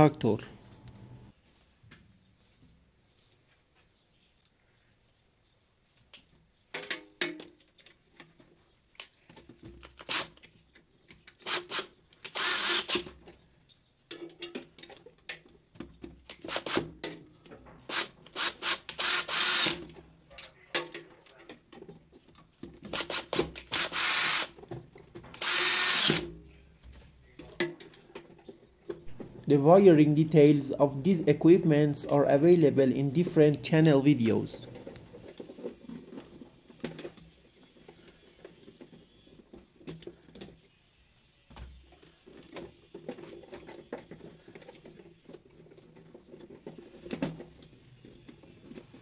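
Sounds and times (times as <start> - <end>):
cordless drill whining: 11.4 - 13.1, 17.9 - 19.8, 22.9 - 24.6, 25.3 - 26.3.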